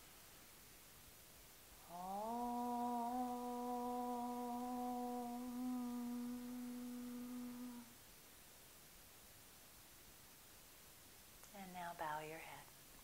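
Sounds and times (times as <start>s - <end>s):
woman chanting om: 1.8s - 7.9s.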